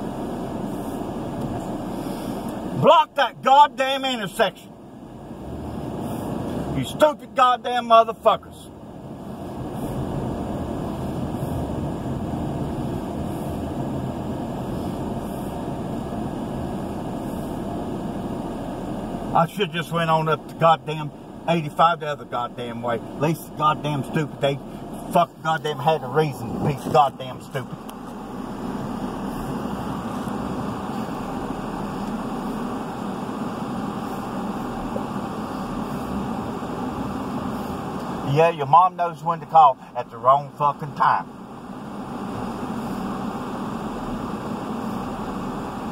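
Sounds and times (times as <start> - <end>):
car cabin road and engine noise: 0.0 - 45.9.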